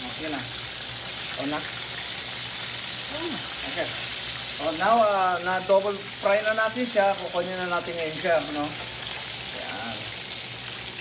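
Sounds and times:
chicken sizzling in hot oil: 0:00.0 - 0:11.0.

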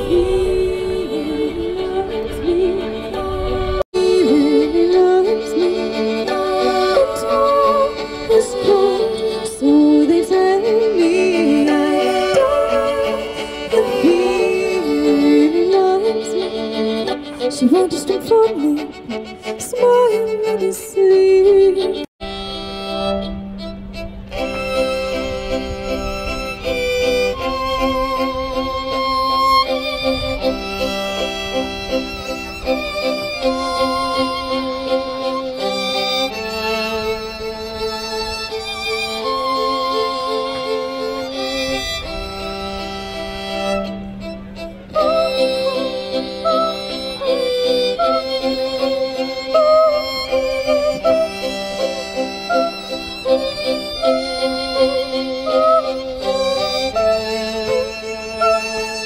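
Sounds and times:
woman singing wordlessly: 0:00.0 - 0:16.8, 0:17.4 - 0:22.1
amplified fiddle playing: 0:00.0 - 0:59.0
violin melody with vibrato: 0:00.0 - 0:59.0
low pulsing accompaniment: 0:21.6 - 0:59.0.

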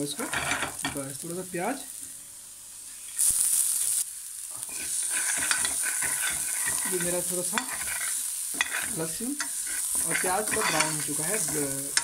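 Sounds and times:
onion sizzling in hot oil: 0:00.0 - 0:12.0
steel spoon scraping a pan: 0:04.6 - 0:12.0.

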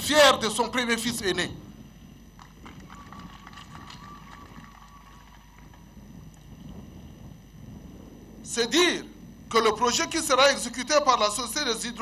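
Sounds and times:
faint crowd clapping: 0:02.4 - 0:05.9.

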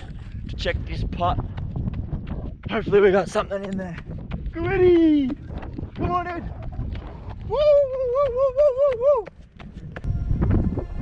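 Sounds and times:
running footsteps on hard ground: 0:00.0 - 0:11.0.

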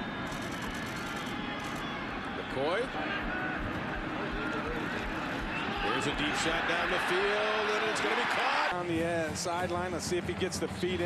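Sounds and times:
stadium crowd roar: 0:00.0 - 0:09.6.

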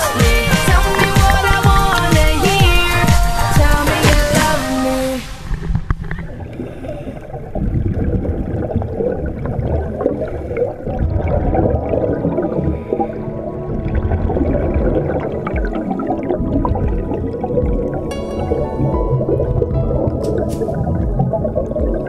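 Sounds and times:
underwater bubbling and gurgling: 0:00.0 - 0:22.0
water at sea surface: 0:00.0 - 0:22.0.

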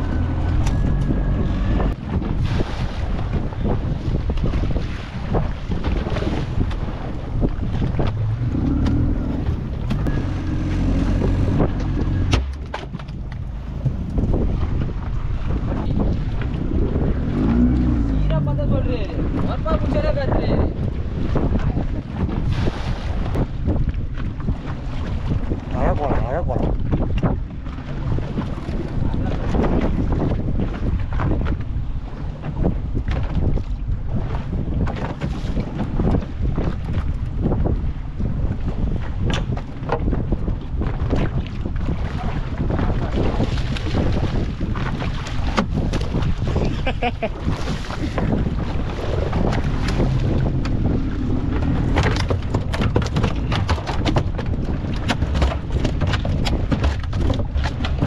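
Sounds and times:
waves washing against boat hull: 0:00.0 - 0:58.0
wind buffeting microphone: 0:00.0 - 0:58.0.

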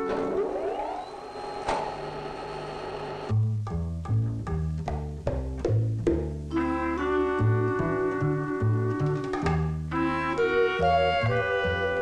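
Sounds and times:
turbine high whine: 0:00.0 - 0:03.4
low machine hum: 0:00.0 - 0:03.6.

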